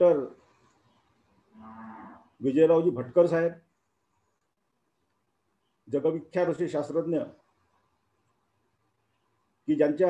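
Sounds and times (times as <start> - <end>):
man speaking over video call: 0.0 - 0.4, 2.4 - 3.7, 5.8 - 7.5, 9.6 - 10.0.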